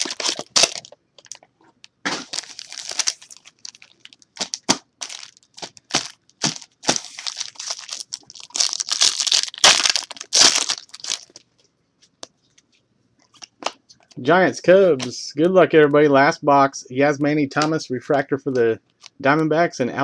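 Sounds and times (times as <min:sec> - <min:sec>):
foil wrapper crinkling: 0:00.0 - 0:01.4, 0:02.1 - 0:11.4.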